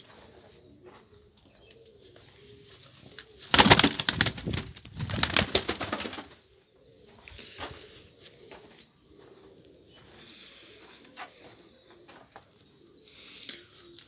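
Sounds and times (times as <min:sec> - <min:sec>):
pigeon wings flapping: 0:03.5 - 0:06.3.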